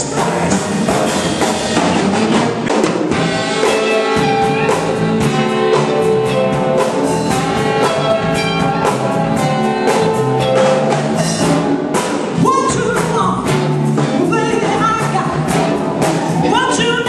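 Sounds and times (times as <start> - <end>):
drums keeping steady beat: 0.0 - 17.0
swing band horn section: 0.0 - 17.0.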